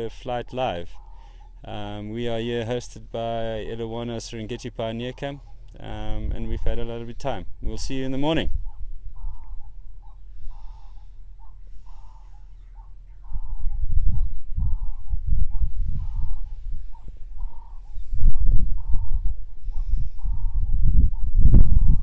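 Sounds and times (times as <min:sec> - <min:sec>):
bird calling: 0:00.0 - 0:22.0
wind rumbling on microphone: 0:05.8 - 0:22.0.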